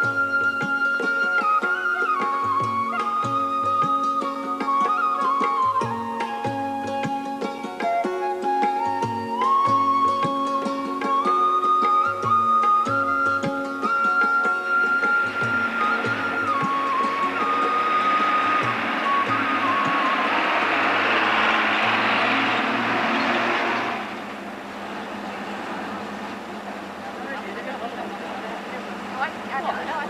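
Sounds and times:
flute melody: 0:00.0 - 0:24.2
bus engine and tyre noise: 0:14.6 - 0:30.0.

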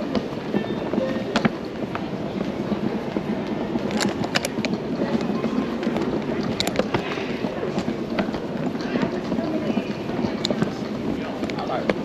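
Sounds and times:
suitcase wheels rumbling on tile: 0:00.0 - 0:12.0.

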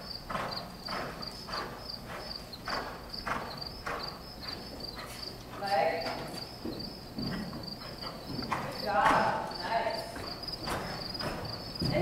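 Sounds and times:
crickets chirping: 0:00.0 - 0:12.0
horse hoofbeats cantering: 0:00.0 - 0:12.0.

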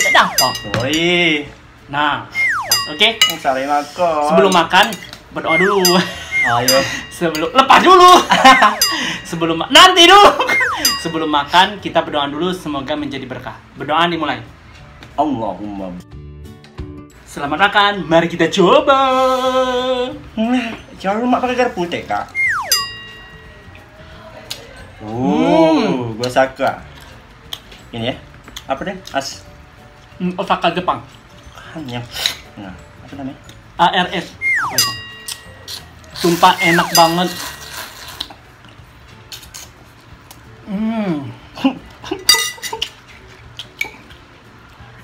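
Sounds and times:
steady high tones: 0:00.0 - 0:01.1, 0:02.3 - 0:03.3, 0:05.4 - 0:07.3, 0:08.3 - 0:09.4, 0:10.4 - 0:11.2, 0:22.3 - 0:23.6, 0:34.4 - 0:35.5, 0:36.4 - 0:37.4
forks clinking on ceramic plates: 0:00.0 - 0:01.2, 0:02.7 - 0:03.6, 0:04.3 - 0:09.4, 0:10.8 - 0:11.3, 0:22.7 - 0:23.4, 0:34.7 - 0:37.7, 0:42.2 - 0:43.0
falling whistle-like glide: 0:02.3 - 0:02.8, 0:22.3 - 0:22.8, 0:34.4 - 0:34.8.

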